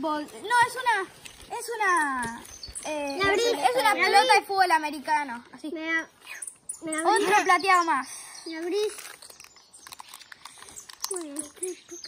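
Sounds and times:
plastic wrapper crinkling and tearing: 0.3 - 2.8, 8.5 - 12.0.

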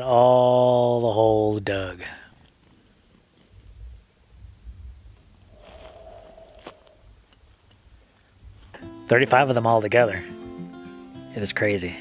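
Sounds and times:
rumble on microphone: 3.5 - 8.8.

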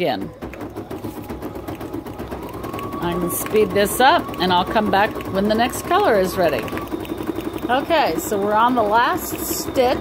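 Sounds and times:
embroidery machine needle ticking: 1.7 - 10.0.

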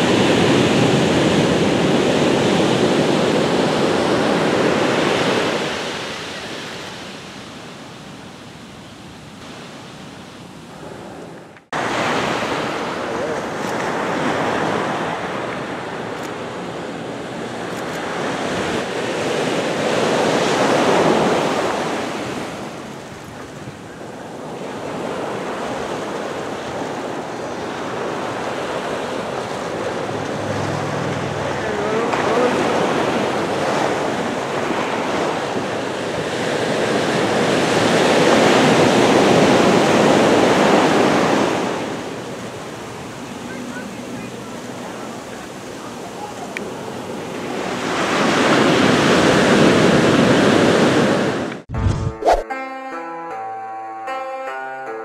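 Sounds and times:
ocean surf on beach: 0.0 - 52.4.

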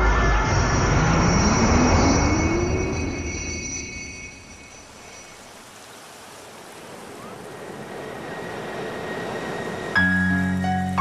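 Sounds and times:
low rising tone: 0.0 - 4.3
high ringing tones: 0.3 - 5.5.

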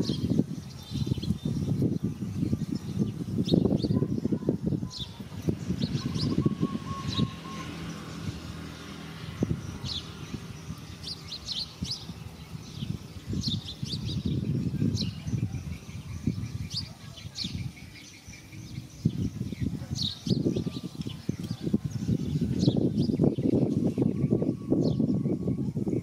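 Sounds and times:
small birds chirping: 0.0 - 26.0.

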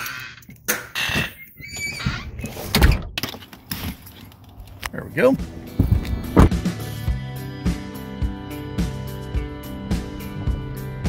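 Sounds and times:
door shutting: 0.0 - 3.5.

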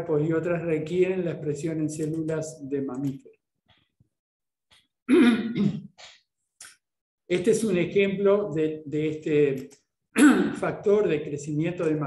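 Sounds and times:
man clearing his throat: 5.1 - 6.0, 10.2 - 10.6.

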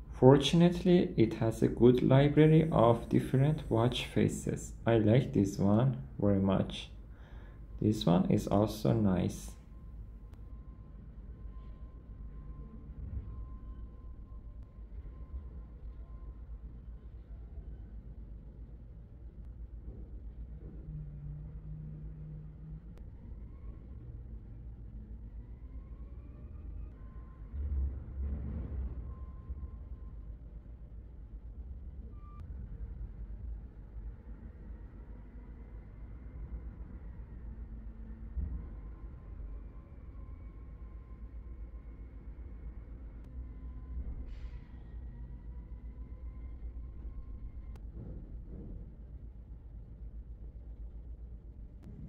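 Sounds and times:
low background rumble: 0.0 - 52.0.

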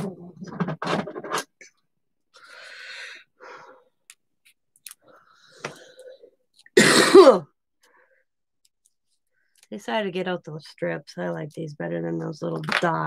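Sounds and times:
woman clearing her throat: 6.8 - 7.5.

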